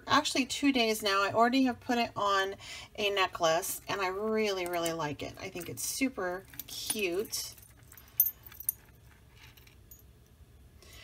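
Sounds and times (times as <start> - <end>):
chain necklace clinking: 4.6 - 10.2.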